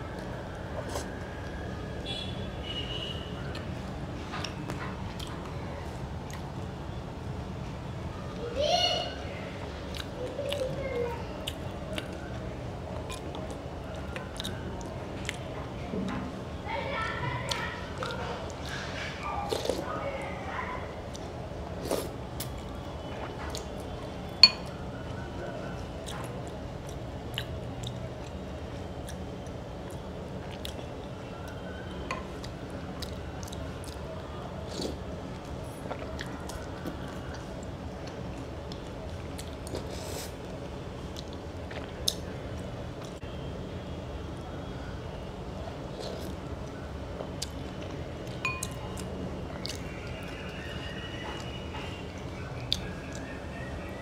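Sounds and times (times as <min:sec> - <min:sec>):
soft chewing: 0:00.0 - 0:02.2, 0:03.4 - 0:06.8, 0:09.6 - 0:15.9, 0:17.0 - 0:43.4, 0:45.6 - 0:53.9
steady low background hum: 0:00.0 - 0:54.0
spoon clinking on glass: 0:24.4 - 0:24.7, 0:48.4 - 0:48.8.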